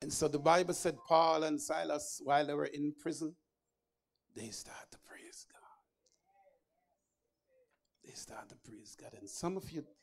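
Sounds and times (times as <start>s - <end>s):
man preaching over loudspeaker: 0.0s - 3.3s, 8.3s - 10.0s.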